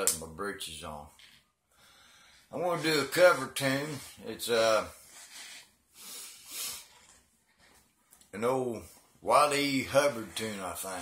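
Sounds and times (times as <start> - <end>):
man breathing softly: 1.7 - 2.5.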